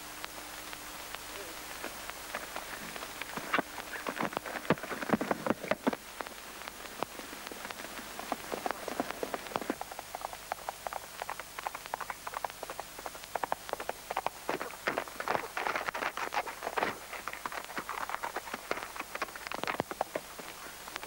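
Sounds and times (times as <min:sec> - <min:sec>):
horse hooves galloping on dirt: 0:01.3 - 0:21.0.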